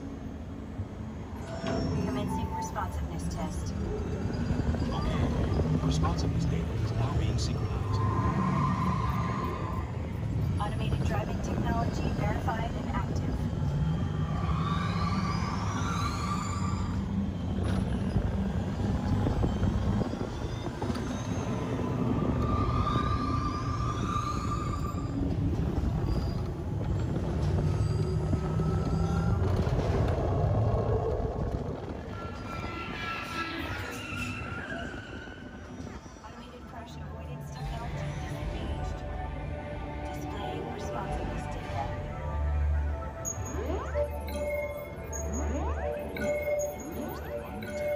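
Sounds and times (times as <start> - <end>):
ride vehicle rumbling on track: 0.0 - 47.9.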